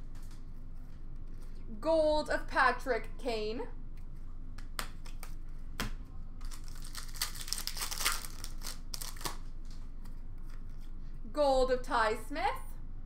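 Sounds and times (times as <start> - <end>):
trading cards flipped by hand: 4.0 - 10.9.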